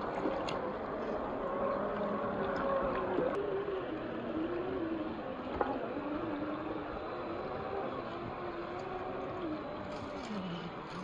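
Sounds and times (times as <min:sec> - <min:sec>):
water wash: 0:00.0 - 0:11.0.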